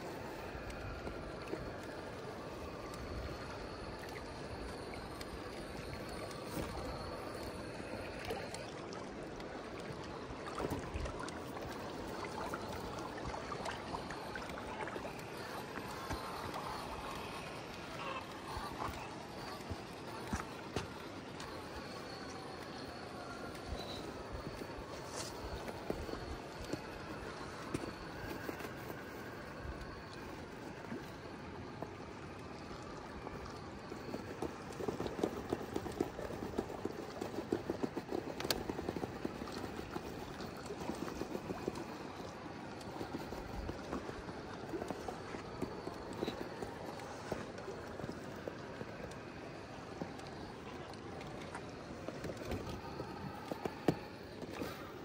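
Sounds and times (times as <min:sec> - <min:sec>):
rc car running: 0:13.8 - 0:30.3.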